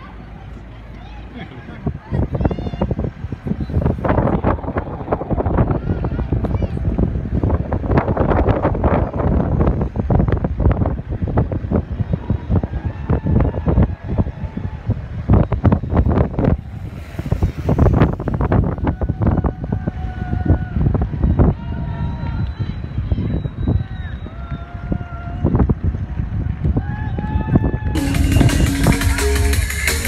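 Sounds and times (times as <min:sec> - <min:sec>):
voices calling out: 0:00.0 - 0:08.0
wind buffeting microphone: 0:00.0 - 0:29.1.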